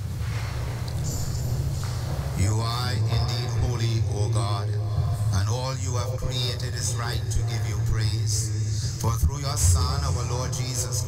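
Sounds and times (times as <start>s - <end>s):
steady low hum: 0.0s - 11.0s
man chanting a prayer: 2.3s - 11.0s.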